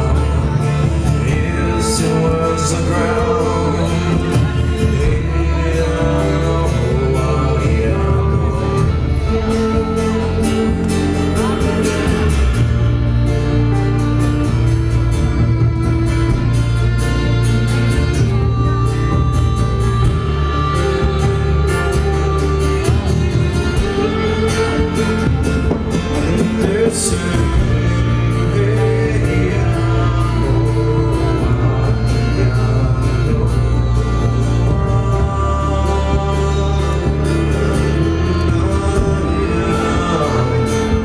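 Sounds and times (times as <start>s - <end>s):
electric guitar: 0.0s - 41.0s
fiddle: 0.0s - 41.0s
live folk rock band playing: 0.0s - 41.0s
strong bass: 0.0s - 41.0s
strummed acoustic guitar: 0.0s - 41.0s.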